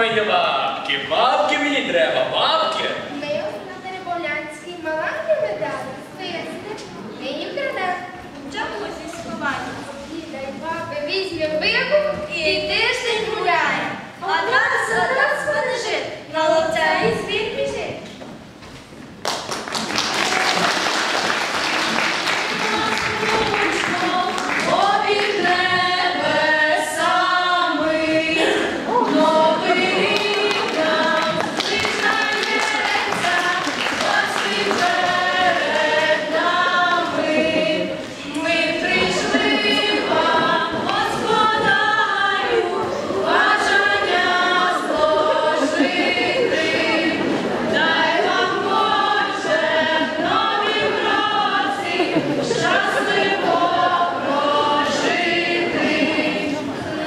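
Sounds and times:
group singing long held notes: 20.0s - 57.0s.

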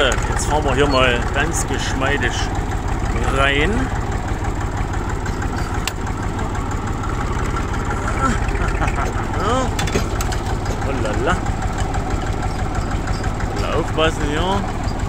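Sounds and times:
old tractor engine running: 0.0s - 15.0s.

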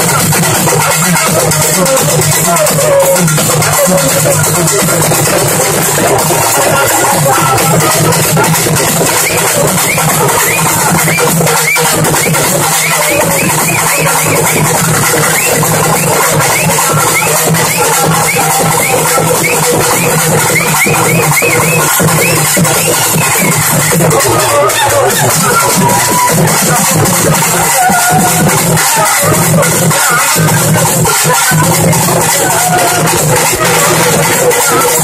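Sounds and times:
hourglass drums whooping: 0.0s - 35.0s
loud steady drumming: 0.0s - 35.0s.

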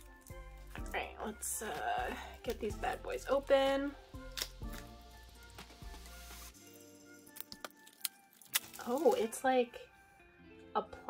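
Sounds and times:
soft background music: 0.0s - 11.0s
plastic wrap crinkling: 4.2s - 9.8s.

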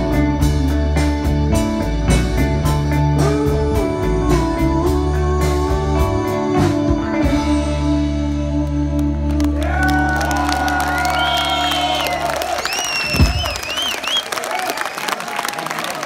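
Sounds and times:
audience applauding and cheering: 9.2s - 16.0s.

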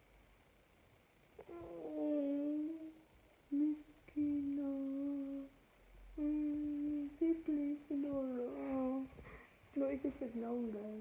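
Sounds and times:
man humming low notes: 1.4s - 5.5s, 6.1s - 8.9s.

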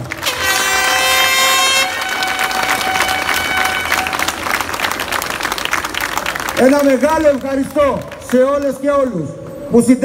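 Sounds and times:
crowd applauding: 0.0s - 9.1s
horn holding steady note: 0.2s - 5.4s.

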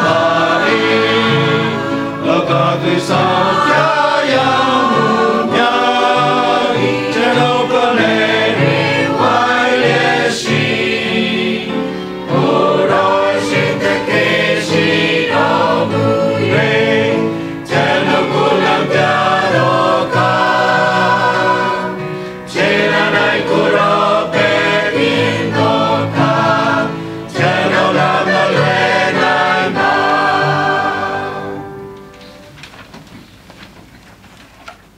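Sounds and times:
choir singing a hymn: 0.0s - 32.1s.

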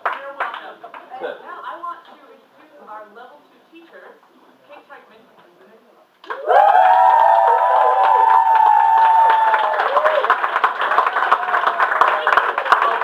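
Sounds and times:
audience clapping: 0.0s - 1.1s, 6.2s - 13.0s
audience whooping and cheering: 6.3s - 12.4s.

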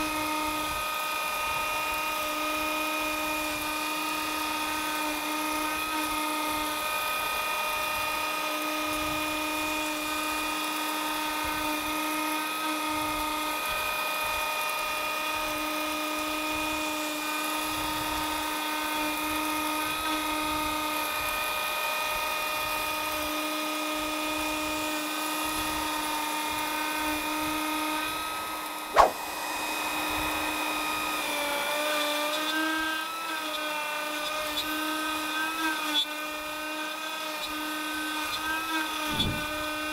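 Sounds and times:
router whining while cutting: 0.0s - 39.9s
sharp click: 29.0s - 29.2s.

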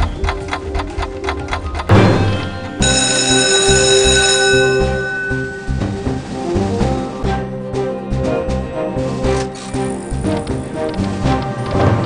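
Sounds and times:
bright bell-like chime: 1.9s - 6.3s
slot game music: 1.9s - 12.0s.

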